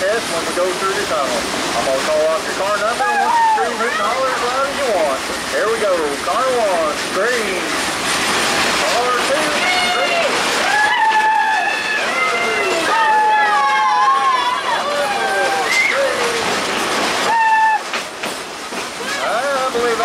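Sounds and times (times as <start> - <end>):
moving train noise: 0.0 - 20.0
people screaming: 2.9 - 4.6, 9.1 - 18.0.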